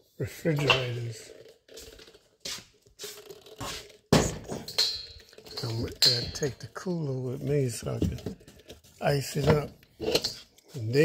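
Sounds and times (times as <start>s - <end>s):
items rustling and scraping: 0.0s - 11.0s.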